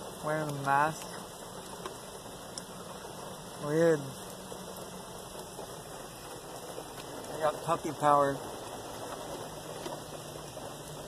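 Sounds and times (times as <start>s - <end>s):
rain on a car roof: 0.0s - 11.0s.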